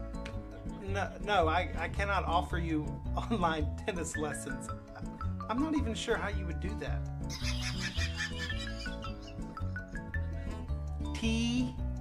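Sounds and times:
background music: 0.0 - 12.0
man laughing high-pitched: 7.3 - 9.5.

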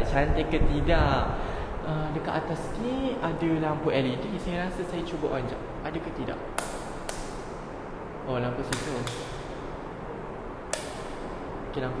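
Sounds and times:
steady background hiss: 0.0 - 12.0
light switch click: 8.7 - 9.5, 10.7 - 11.2.

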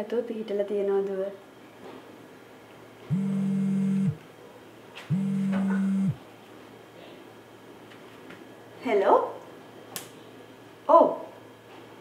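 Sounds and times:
steady low tone: 3.1 - 4.2, 5.1 - 6.2.

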